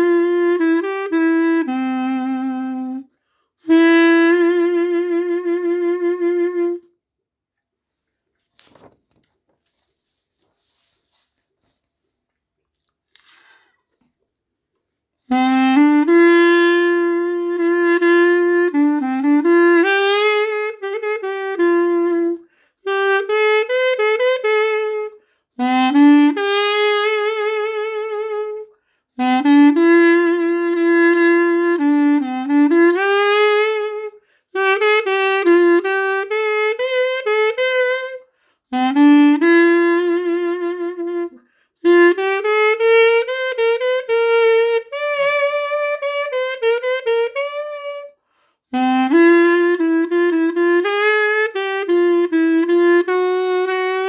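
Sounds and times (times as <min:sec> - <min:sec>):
pocket sax melody: 0:00.0 - 0:07.1, 0:13.2 - 0:54.0.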